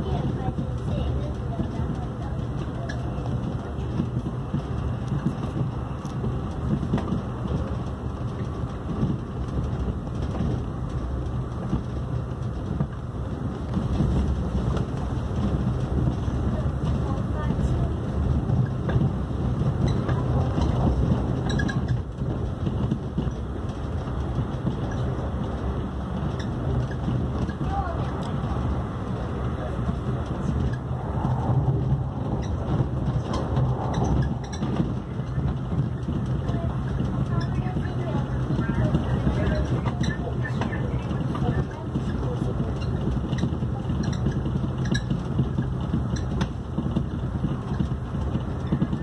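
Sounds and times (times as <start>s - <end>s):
train wheels rumbling on rail: 0.0s - 49.0s.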